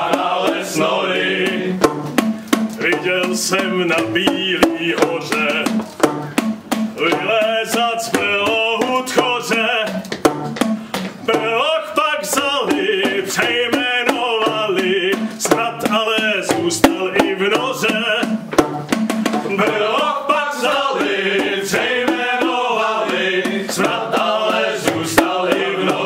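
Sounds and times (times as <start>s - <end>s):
people singing together: 0.0s - 5.8s, 7.0s - 10.0s, 11.3s - 15.8s, 19.4s - 26.0s
knocks of plastic percussion tubes: 0.0s - 26.0s.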